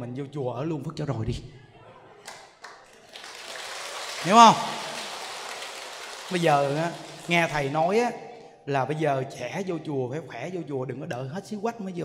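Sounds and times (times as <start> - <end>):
audience clapping: 2.2 - 7.9.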